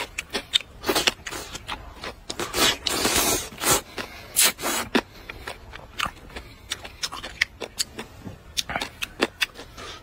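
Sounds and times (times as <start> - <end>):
wet chewing clicks: 0.0 - 3.1, 3.8 - 10.0
person slurping noodles: 2.4 - 5.0.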